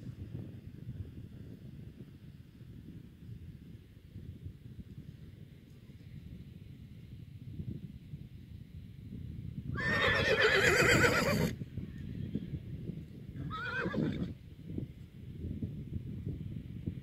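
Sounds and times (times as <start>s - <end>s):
horse whinnying: 9.8s - 11.6s, 13.4s - 14.3s.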